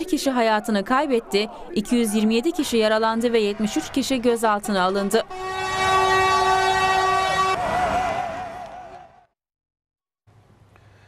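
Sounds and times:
wavering horn tone: 0.0 - 9.0
loud steady horn blast: 1.1 - 9.3.

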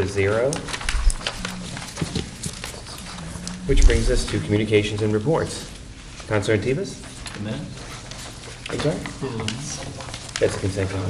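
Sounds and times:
papers rustling: 0.0 - 11.0.

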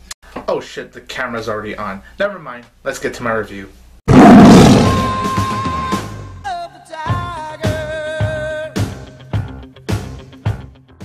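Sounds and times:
tiger roar: 4.1 - 5.0.

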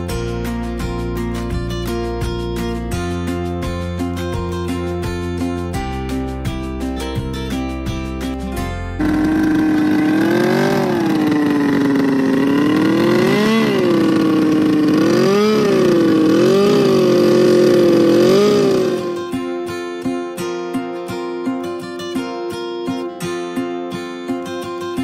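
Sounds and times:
guitar music: 0.0 - 25.0
snowmobile engine revving: 9.0 - 19.2.

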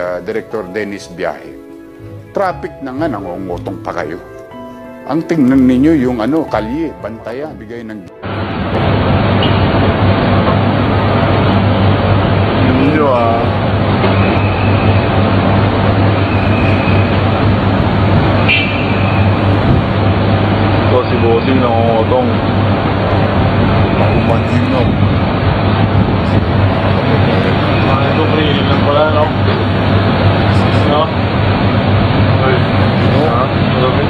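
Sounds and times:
street traffic noise: 0.0 - 34.0
faint voices: 26.2 - 29.8.

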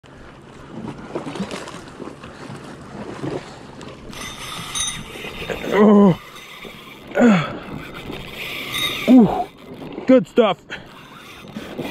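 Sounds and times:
sea water splashing against rocks: 0.6 - 10.2.

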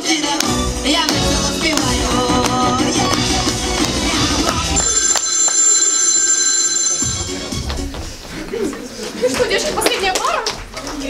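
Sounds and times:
dance music: 0.0 - 5.1
bell ringing: 4.8 - 7.7.

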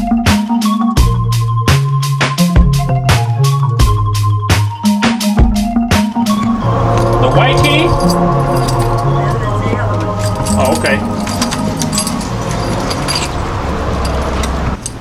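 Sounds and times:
background music with bass line: 0.0 - 13.3.

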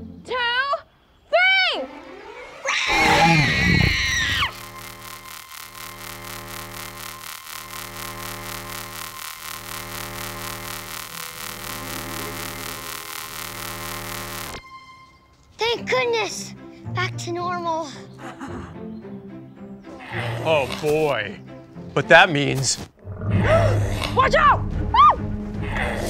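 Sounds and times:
pulsing synthesized hum: 1.7 - 14.6
wavering creature-like cry: 2.6 - 4.6, 20.0 - 20.9.

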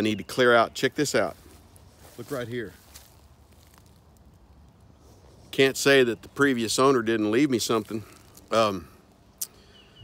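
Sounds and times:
low outdoor rumble: 0.0 - 9.8.

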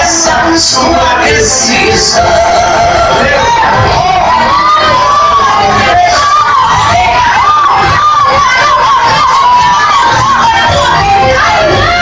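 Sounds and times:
man and woman singing gospel: 0.0 - 12.0.

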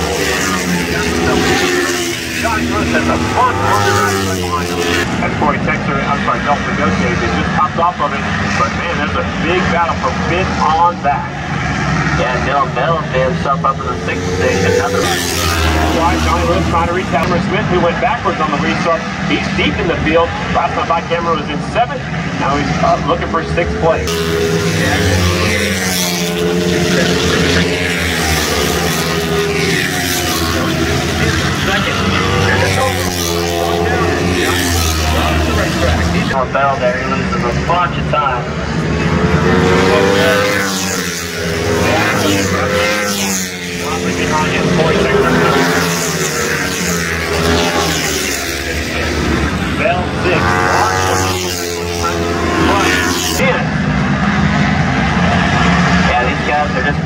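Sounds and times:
commentator over loudspeaker: 0.0 - 57.0
motorcycle engines passing: 0.0 - 57.0.

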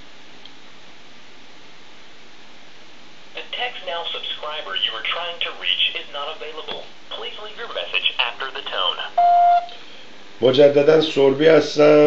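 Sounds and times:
person speaking over phone: 3.4 - 9.3
telephone line hiss: 8.9 - 9.8.

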